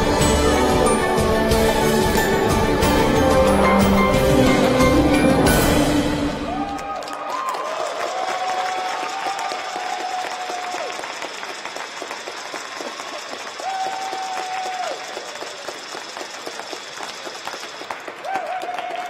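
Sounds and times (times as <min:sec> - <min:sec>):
audience applauding: 0:00.0 - 0:19.0
long held cheer: 0:06.2 - 0:11.4, 0:12.4 - 0:15.6, 0:18.1 - 0:19.0.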